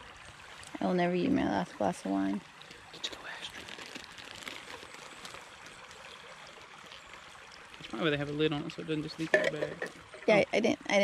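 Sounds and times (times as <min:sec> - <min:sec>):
faint water trickle: 0:00.0 - 0:11.0.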